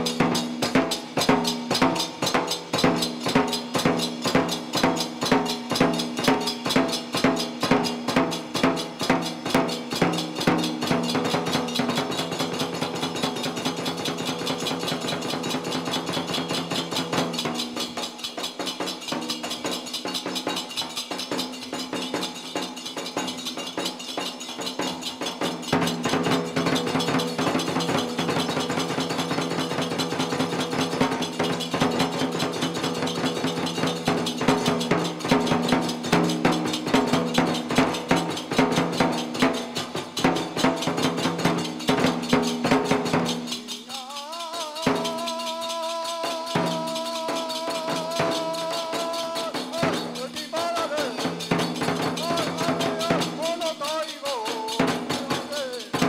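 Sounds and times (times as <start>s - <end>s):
small hand cymbals: 0.0s - 56.0s
large drum beating: 46.5s - 53.8s.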